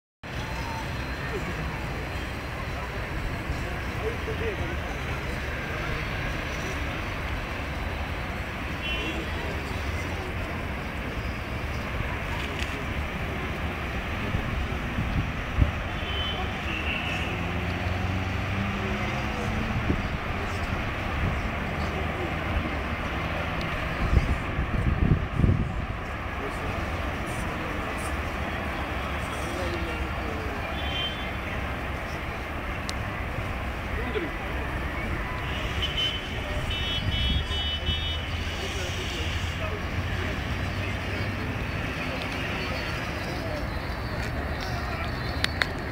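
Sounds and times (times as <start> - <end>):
distant road traffic hum: 0.2 - 45.9.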